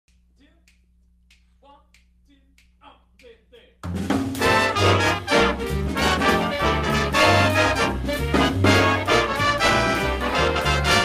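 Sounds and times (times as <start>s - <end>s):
finger snaps in a steady beat: 0.0s - 3.7s.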